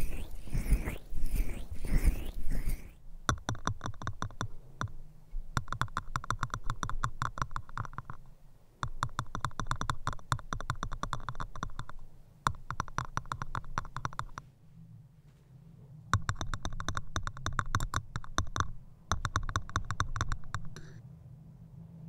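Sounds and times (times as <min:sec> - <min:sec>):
crisp clicking and tapping: 0:00.0 - 0:05.0, 0:05.6 - 0:14.4, 0:16.2 - 0:21.0.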